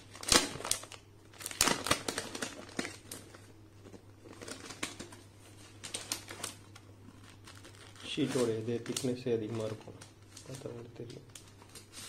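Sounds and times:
plastic sleeve crinkling: 0.0s - 12.0s
paper sheets rustling: 1.4s - 12.0s.

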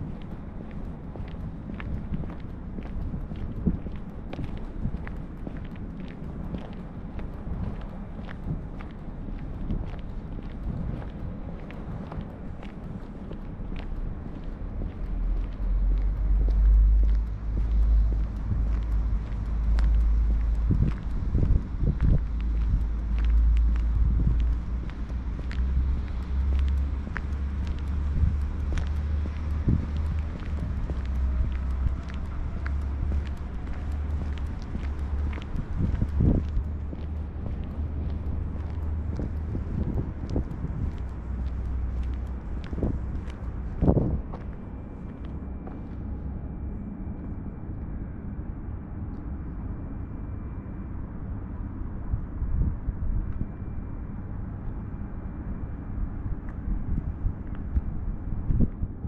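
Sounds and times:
footsteps on paved path: 0.0s - 47.4s, 54.6s - 58.9s
outdoor ambient rumble: 0.0s - 59.0s.

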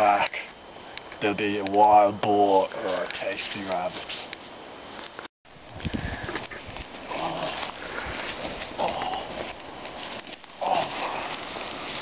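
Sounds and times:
dry leaves rustling and crackling: 4.9s - 12.0s
person grunting: 7.1s - 7.7s, 8.8s - 9.5s, 10.6s - 11.4s.

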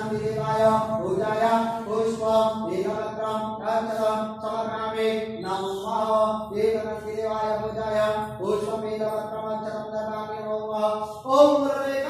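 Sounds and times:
person chanting a mantra: 0.0s - 12.0s.

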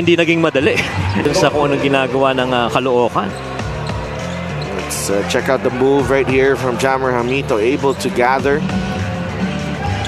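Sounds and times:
music playing low: 0.0s - 10.0s
arena ambience: 0.6s - 10.0s.

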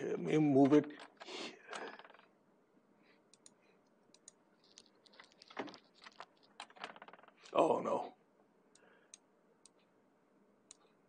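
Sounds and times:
computer mouse clicks: 3.3s - 5.6s.

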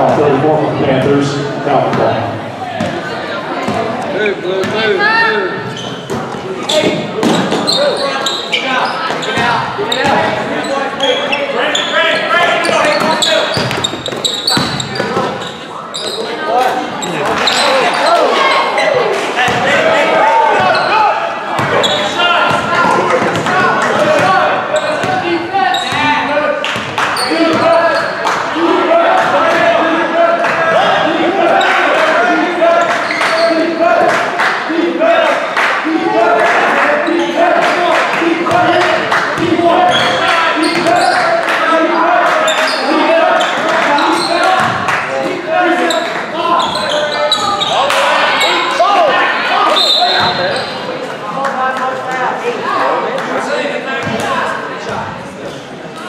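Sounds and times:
voices echoing in a hall: 0.0s - 56.0s.

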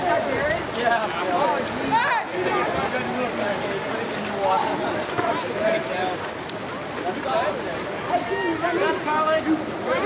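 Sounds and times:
people shouting and calling: 0.0s - 3.6s, 6.8s - 10.0s
swimmers splashing: 0.0s - 10.0s.

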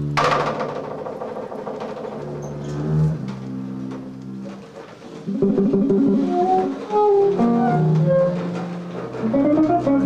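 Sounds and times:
double bass bowed: 1.2s - 10.0s.

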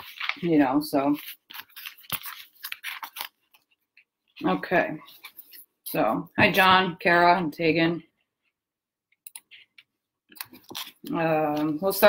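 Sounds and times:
crisp rustles and clicks: 0.0s - 5.7s.

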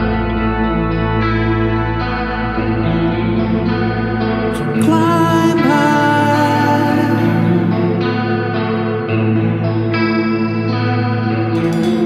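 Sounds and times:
instrumental progressive rock: 0.0s - 12.0s.

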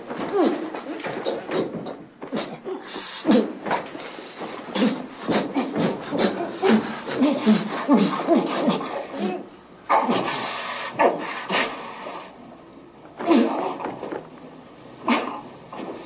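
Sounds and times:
steady hiss: 2.4s - 12.9s.

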